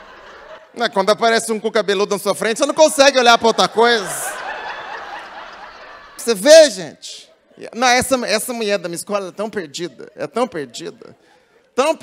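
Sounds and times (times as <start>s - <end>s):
audience laughing: 0.0s - 12.0s.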